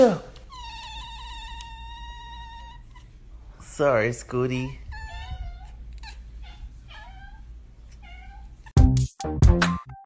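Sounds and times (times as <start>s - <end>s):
cat meowing: 4.9s - 8.7s
electronic music with heavy beat: 8.8s - 10.0s.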